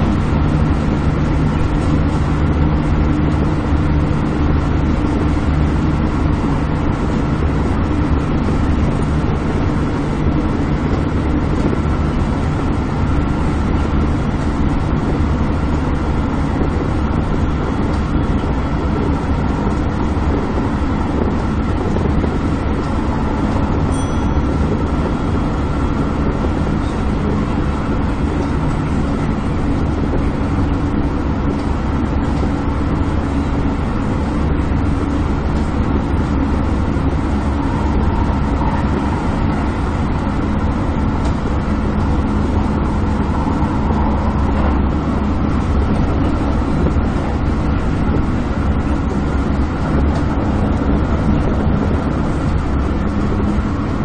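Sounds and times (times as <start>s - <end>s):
train wheels on rails: 0.0s - 54.0s.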